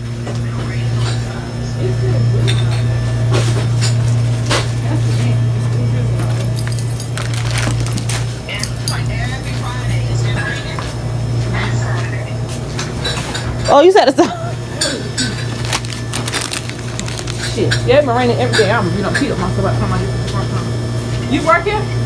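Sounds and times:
distant voices: 0.0s - 21.0s
steady low hum: 0.0s - 22.0s.

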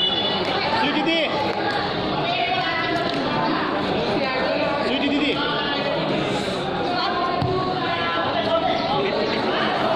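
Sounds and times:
chatter of voices: 0.0s - 9.9s.

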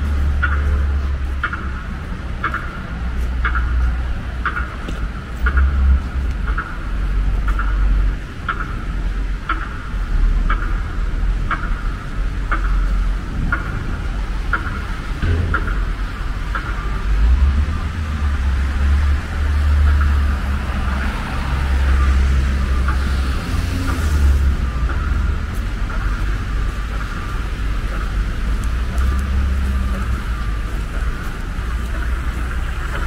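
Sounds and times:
traffic rumbling on wet street: 0.0s - 33.0s
faint light ticks: 2.4s - 10.9s, 24.6s - 33.0s.

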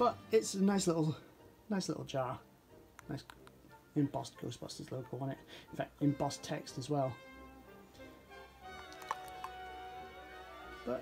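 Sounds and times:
soft background music: 0.0s - 11.0s
plastic jar clicks: 8.8s - 9.6s.

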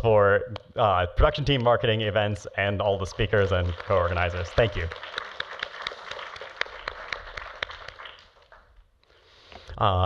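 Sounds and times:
audience applauding: 3.2s - 8.7s.

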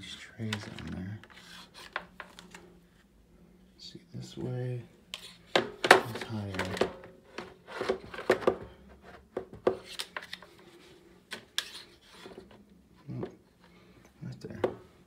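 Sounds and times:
plastic trays knocking and scraping: 5.5s - 10.3s.

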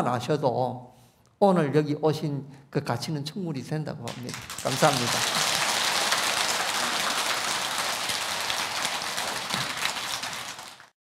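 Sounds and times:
audience applauding: 4.1s - 11.0s.

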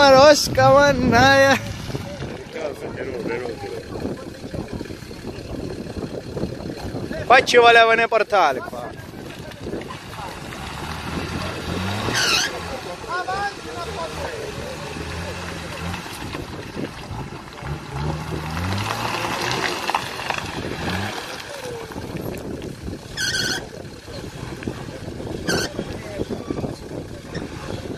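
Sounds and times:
engine labouring in low gear: 0.0s - 7.5s, 9.0s - 27.9s.

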